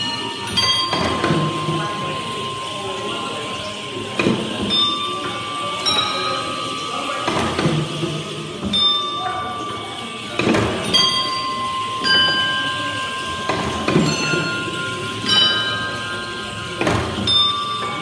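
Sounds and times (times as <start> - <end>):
wooden gears clunking: 13.3 - 18.0.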